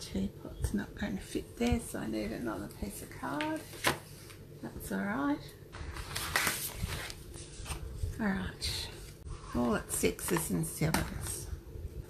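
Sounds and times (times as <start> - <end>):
paper rustling: 5.8 - 8.0.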